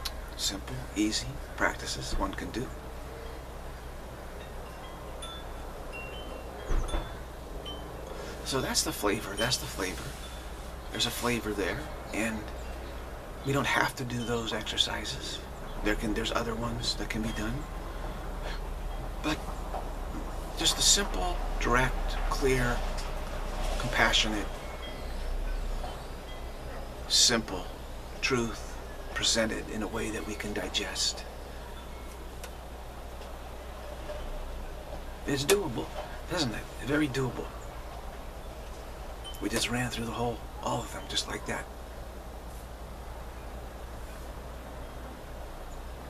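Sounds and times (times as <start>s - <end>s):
steady background hiss: 0.0s - 46.0s
high bell-like tinkles: 4.3s - 19.6s, 20.2s - 37.6s, 38.3s - 41.6s.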